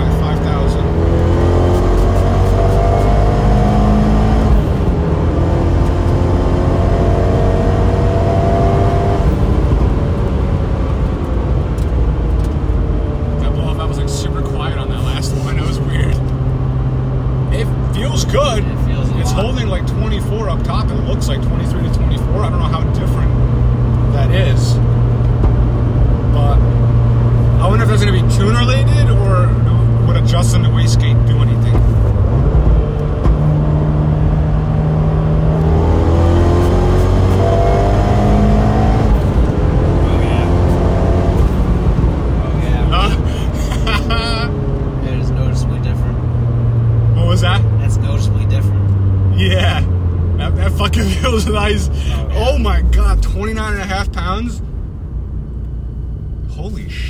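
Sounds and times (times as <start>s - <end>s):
turbo car engine accelerating: 0.0s - 57.0s.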